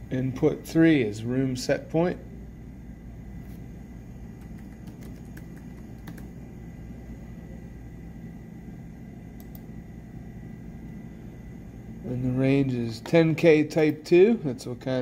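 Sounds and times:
low room hum: 0:00.0 - 0:15.0
computer keyboard typing: 0:04.4 - 0:06.3, 0:09.4 - 0:09.7.

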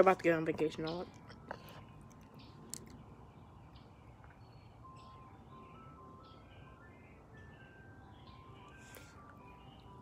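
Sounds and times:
distant ice cream truck jingle: 0:00.0 - 0:10.0.

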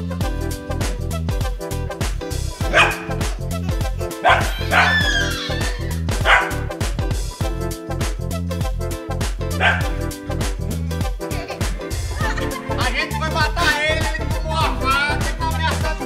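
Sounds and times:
background music with steady beat: 0:00.0 - 0:16.0
dog barking playfully: 0:02.6 - 0:06.8, 0:09.5 - 0:10.0.

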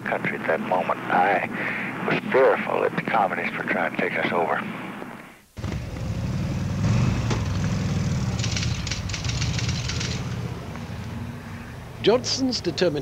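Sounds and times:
car engine pulling away: 0:05.6 - 0:11.3
quick ticks: 0:08.4 - 0:10.4.

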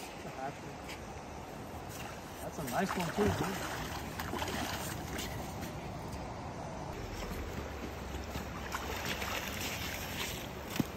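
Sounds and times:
fish splashing in shallow water: 0:02.0 - 0:05.5, 0:07.0 - 0:10.7
low rumble of water: 0:06.8 - 0:10.6.

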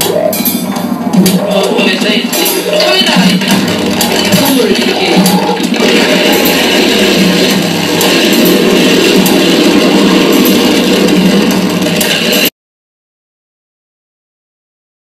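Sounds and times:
gliding tone: 0:00.0 - 0:12.5
harsh electronic noise music: 0:00.0 - 0:12.5
scattered clicks: 0:00.0 - 0:12.5.

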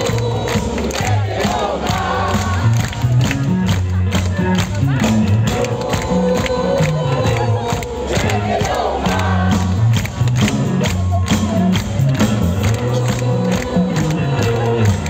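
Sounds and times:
crowd shouting and cheering: 0:00.0 - 0:15.0
live rock band playing: 0:00.0 - 0:15.0.

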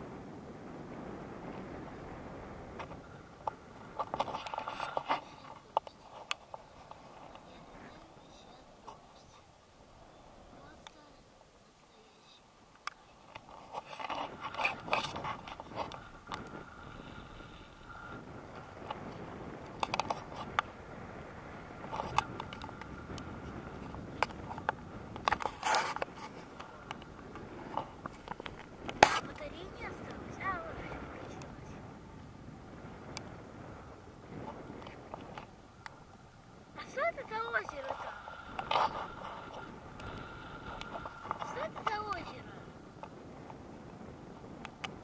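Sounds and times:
wind rushing over microphone: 0:00.0 - 0:11.6, 0:12.6 - 0:45.0
camera handling scrapes and knocks: 0:04.0 - 0:07.4, 0:13.4 - 0:16.6, 0:24.2 - 0:27.1, 0:27.7 - 0:29.3.

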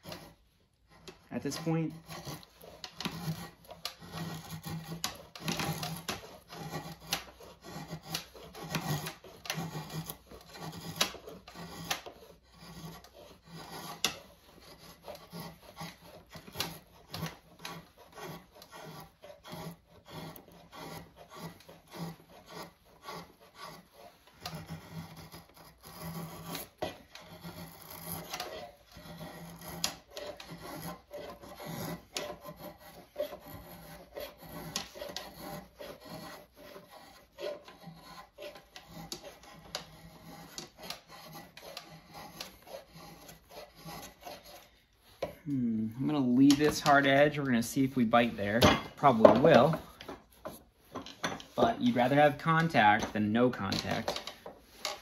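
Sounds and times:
rasp scraping wood: 0:00.0 - 0:55.0.

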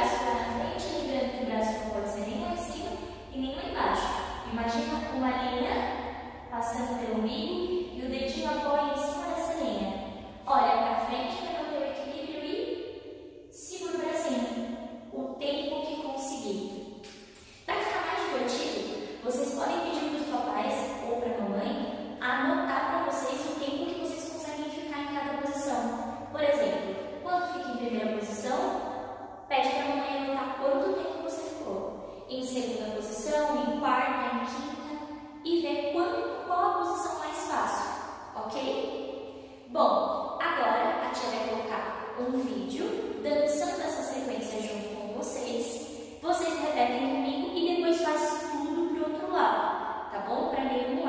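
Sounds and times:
woman speaking: 0:00.0 - 0:12.7, 0:13.5 - 0:28.8, 0:29.5 - 0:51.0
woman talking: 0:00.0 - 0:12.7, 0:13.5 - 0:28.8, 0:29.5 - 0:38.9, 0:39.6 - 0:51.0.

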